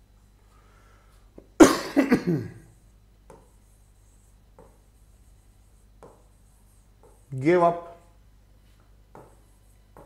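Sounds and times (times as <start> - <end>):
man coughing: 1.6 - 2.7.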